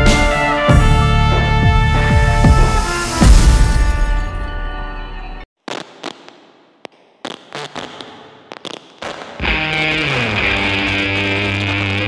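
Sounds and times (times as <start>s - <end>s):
sharp musical hits: 0.0s - 5.2s.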